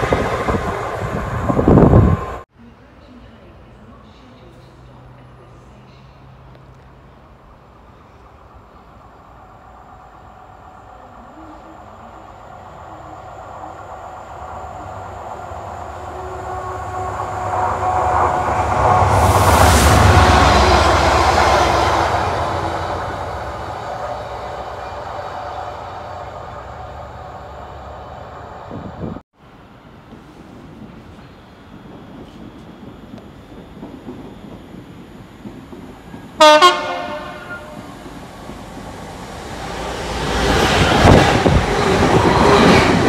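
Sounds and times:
locomotive engine passing: 8.5s - 29.2s, 36.0s - 43.0s
train wheels on rails: 13.7s - 29.2s, 29.8s - 43.0s.

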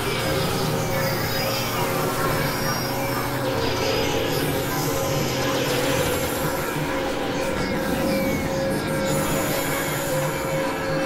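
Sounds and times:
industrial synthesizer drone: 0.0s - 11.0s.

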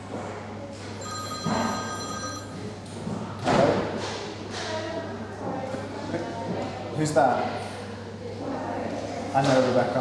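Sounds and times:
mobile phone ringtone: 1.0s - 2.6s.

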